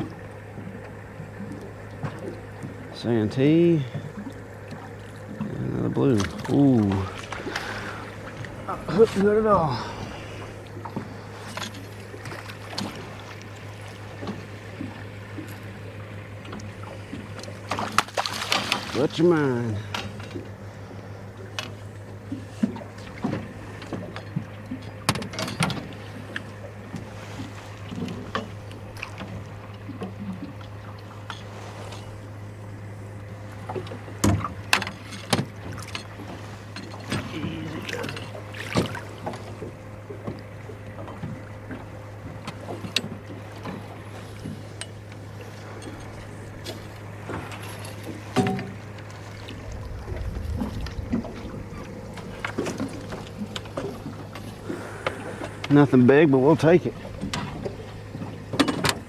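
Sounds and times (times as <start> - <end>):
low rumbling: 0.0 - 17.8, 25.8 - 59.0
pump humming: 0.0 - 59.0
fishing gear knocking and clattering: 23.3 - 25.9, 33.8 - 37.3, 44.4 - 49.1, 57.2 - 59.0.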